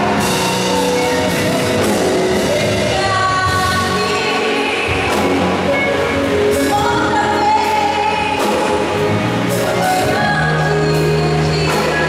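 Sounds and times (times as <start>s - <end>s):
instrumental accompaniment: 0.0s - 12.0s
woman singing gospel song: 2.1s - 9.0s, 9.8s - 12.0s.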